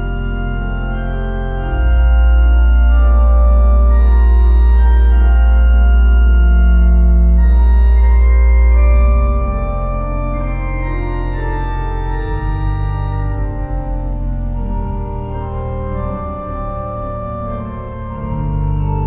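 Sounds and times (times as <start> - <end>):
deep organ pedal bass note: 0.0 - 19.0
pipe organ playing hymn chords: 0.0 - 19.0.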